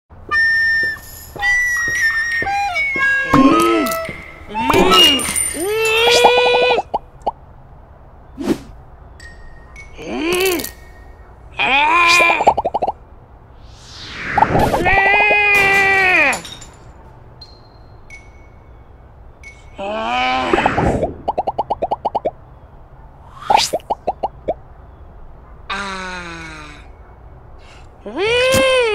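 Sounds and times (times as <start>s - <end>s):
rising whoosh: 13.5s - 15.4s.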